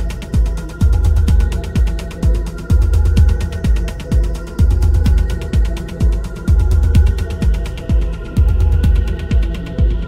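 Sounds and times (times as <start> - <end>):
techno kick drum: 0.0 - 10.0
ticking hi-hats: 0.0 - 10.0.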